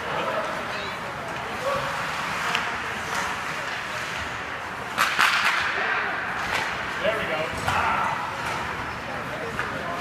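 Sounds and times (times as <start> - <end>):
hockey sticks and puck clacking: 0.0 - 10.0.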